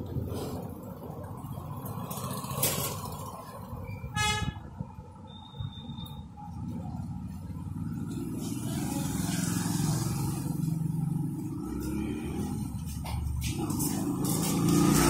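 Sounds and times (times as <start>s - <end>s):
vehicle engine rumble: 0.0s - 15.0s
vehicle horn toot: 4.1s - 4.7s.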